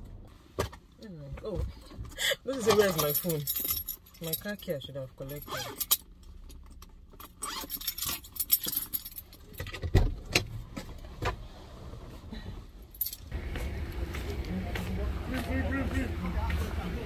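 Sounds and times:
keys jangling: 2.5 - 9.7.

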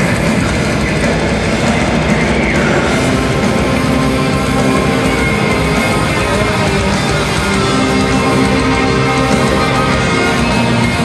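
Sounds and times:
distorted electric guitars: 0.0 - 11.0
fast dense drumming: 0.0 - 11.0.

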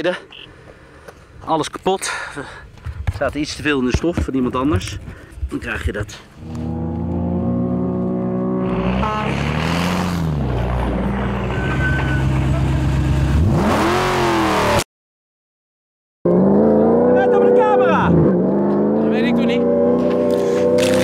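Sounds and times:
rally car engine revving and accelerating: 6.4 - 14.8, 16.3 - 21.0.

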